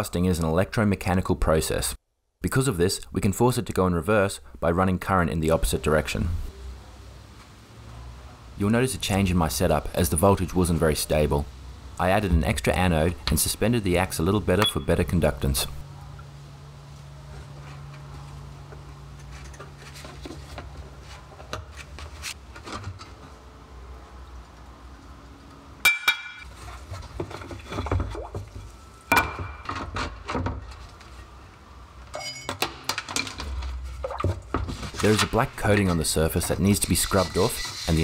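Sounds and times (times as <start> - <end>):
low steady hum: 2.4 - 21.5
metal clinks and knocks: 32.1 - 33.5.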